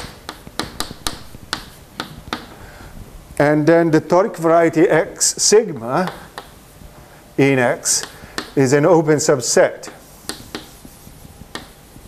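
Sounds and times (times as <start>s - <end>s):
chalk tapping on a blackboard: 0.0s - 2.6s, 5.8s - 6.6s, 7.8s - 8.6s, 9.8s - 12.0s.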